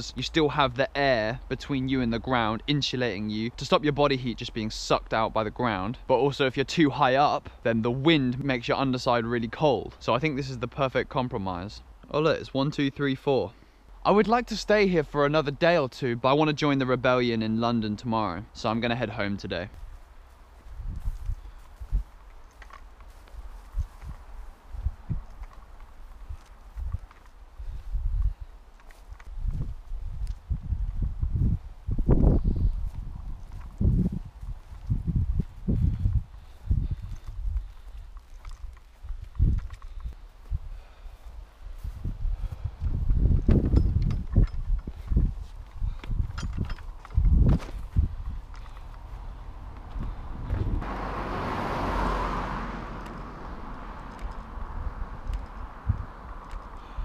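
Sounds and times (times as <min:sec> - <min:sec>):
footsteps on rough ground: 0:18.7 - 0:50.9, 0:53.0 - 0:57.0.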